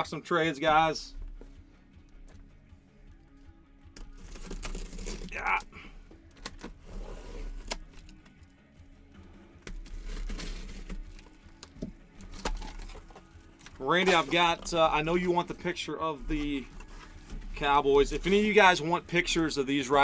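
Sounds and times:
faint background music: 0.0 - 20.0
cardboard scraping and tearing: 4.1 - 5.7, 6.5 - 8.0, 9.7 - 11.4, 12.2 - 20.0.

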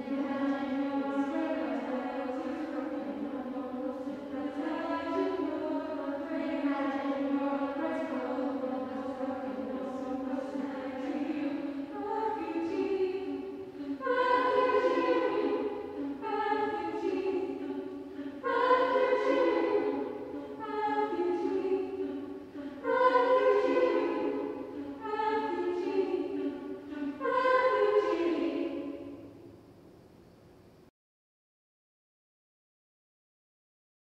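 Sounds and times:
women's choir singing a cappella: 0.0 - 29.4.

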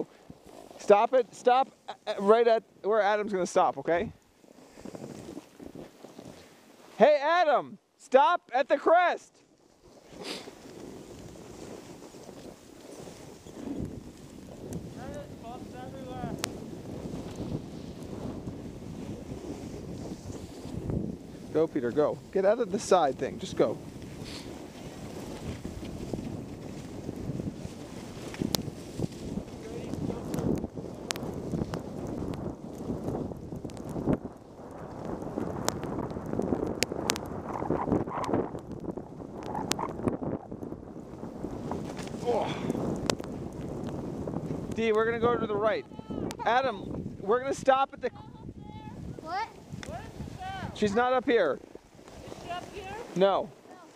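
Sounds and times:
skis scraping over snow: 0.0 - 7.1, 9.5 - 45.7, 49.0 - 53.9
skis hissing on snow: 9.9 - 13.9, 14.6 - 23.0, 24.0 - 30.3, 52.0 - 53.9
wind rushing over microphone: 10.0 - 53.7.

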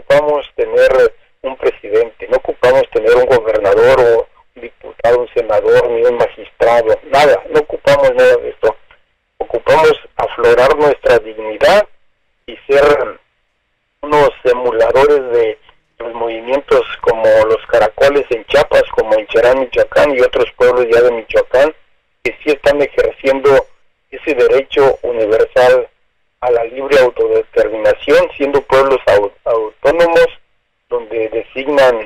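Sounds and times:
person speaking over telephone: 0.0 - 11.9, 12.5 - 13.2, 14.0 - 32.0.

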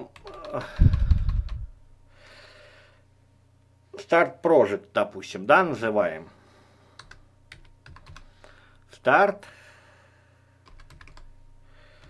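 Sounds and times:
faint keyboard keystrokes: 10.7 - 11.3.

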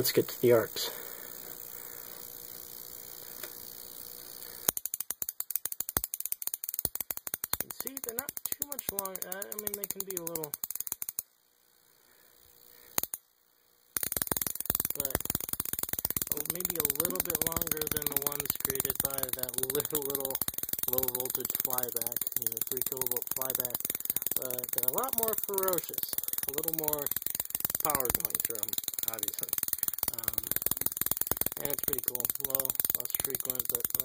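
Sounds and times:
high-voltage sparks crackling: 0.0 - 13.2, 13.8 - 34.0.

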